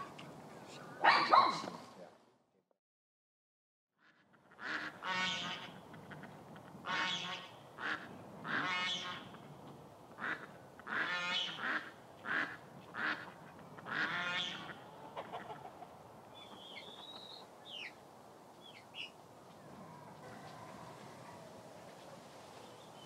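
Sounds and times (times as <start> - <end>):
waterfowl calling: 10.2 - 17.9
small bird chirps: 16.4 - 18.0.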